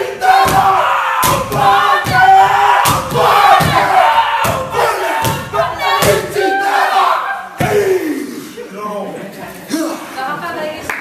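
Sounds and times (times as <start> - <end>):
men shouting and chanting: 0.0 - 8.7.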